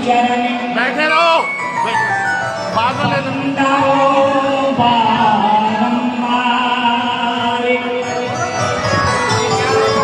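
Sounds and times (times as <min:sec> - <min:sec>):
sustained instrumental melody: 0:01.0 - 0:04.8, 0:07.8 - 0:10.0.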